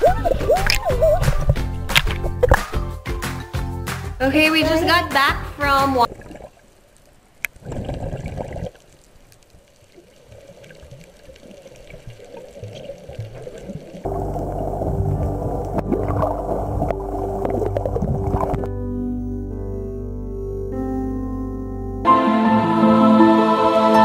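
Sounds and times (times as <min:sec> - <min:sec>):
muffled underwater water noise: 0:06.0 - 0:18.7
music with held notes: 0:14.1 - 0:24.0.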